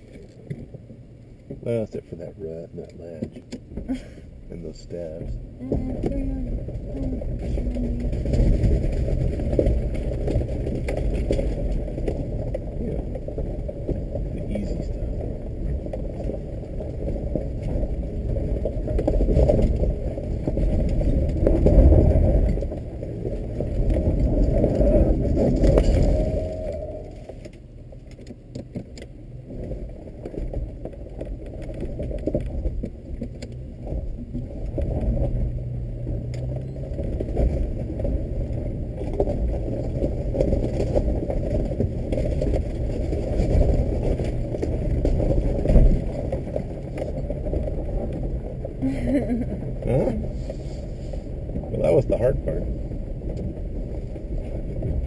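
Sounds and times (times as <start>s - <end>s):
tyres crunching over gravel: 0.0s - 55.0s
vehicle knocks and rattles: 0.0s - 55.0s
car engine pulling under load: 3.0s - 51.8s.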